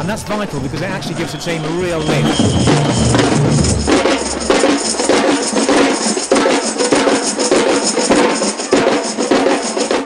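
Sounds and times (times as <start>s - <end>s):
samba drumming band: 0.3s - 10.0s.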